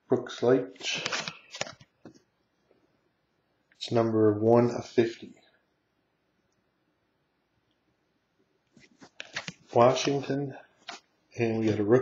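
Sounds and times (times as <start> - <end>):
cards rubbing and clicking: 8.8 - 11.0.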